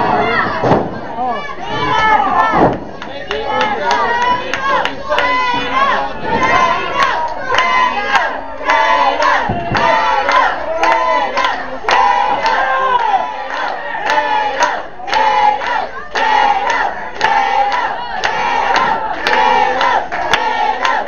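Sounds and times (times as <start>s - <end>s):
crowd shouting and chanting: 0.0s - 21.0s.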